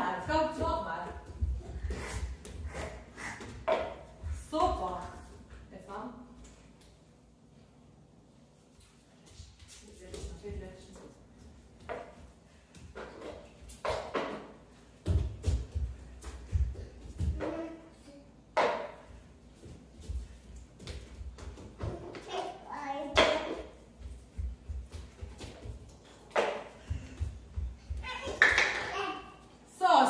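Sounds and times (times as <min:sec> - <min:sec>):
footsteps running on wooden floor: 0:00.3 - 0:05.3, 0:15.0 - 0:17.4, 0:23.9 - 0:26.0, 0:26.7 - 0:28.3.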